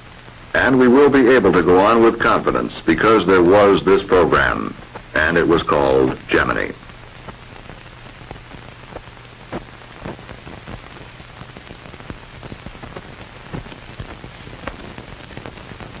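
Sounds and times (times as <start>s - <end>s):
crackles and pops: 0.0s - 16.0s
film soundtrack hiss: 0.0s - 16.0s.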